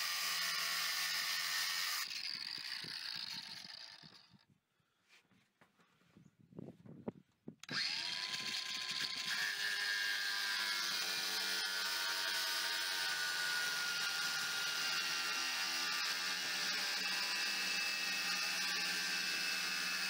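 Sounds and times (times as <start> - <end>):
angle grinder cutting steel: 0.0 - 4.4, 7.6 - 20.0.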